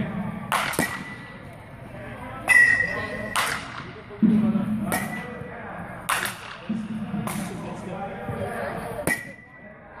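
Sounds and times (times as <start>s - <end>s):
bat hitting balls: 0.0s - 1.4s, 2.4s - 5.4s, 6.0s - 7.8s, 9.0s - 9.6s
murmur of voices: 0.0s - 10.0s.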